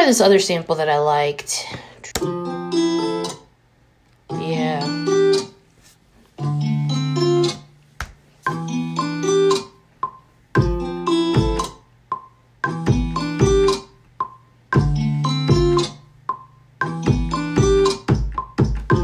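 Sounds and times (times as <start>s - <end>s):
programmed kick drum: 10.0s - 19.0s.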